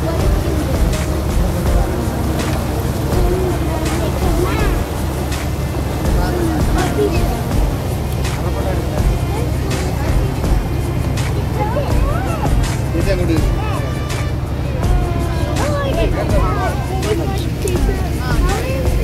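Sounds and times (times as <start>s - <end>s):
boat engine droning: 0.0s - 19.0s
people's voices: 0.0s - 19.0s.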